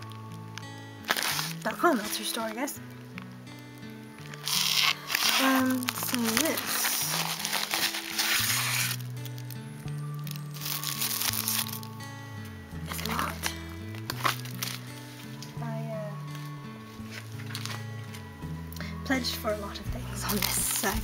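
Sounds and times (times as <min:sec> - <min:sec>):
background music with low notes: 0:00.0 - 0:21.0
tissue paper package handled: 0:01.0 - 0:02.6, 0:04.2 - 0:18.3, 0:19.6 - 0:21.0
plastic mailer crinkling: 0:01.0 - 0:02.7, 0:04.2 - 0:12.0, 0:12.8 - 0:15.5, 0:16.3 - 0:18.2, 0:20.2 - 0:21.0.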